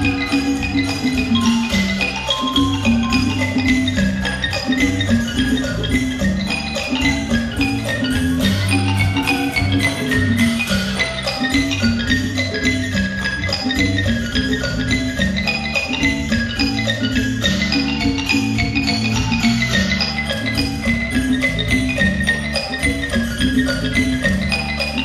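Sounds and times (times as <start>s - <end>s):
percussion: 0.0s - 25.0s
wooden log xylophone: 0.0s - 25.0s.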